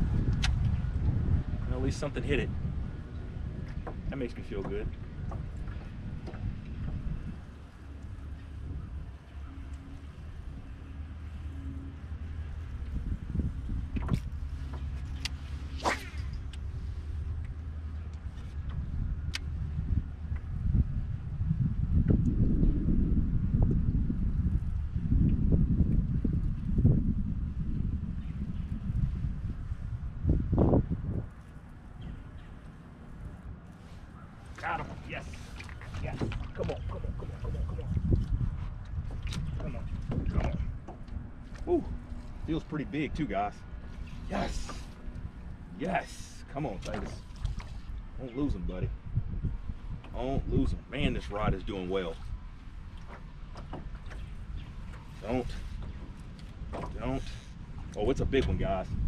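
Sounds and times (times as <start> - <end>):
low rumble: 0.0 - 59.0
water around boat hull: 0.0 - 59.0
wind on microphone: 0.0 - 59.0.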